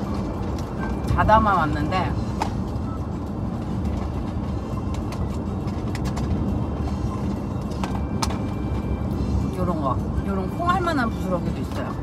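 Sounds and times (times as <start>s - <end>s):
car cabin road and engine rumble: 0.0s - 12.0s.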